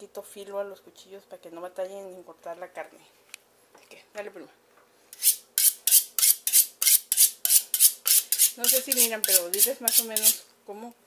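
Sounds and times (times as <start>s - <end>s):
knife scraping against knife: 5.1s - 10.4s.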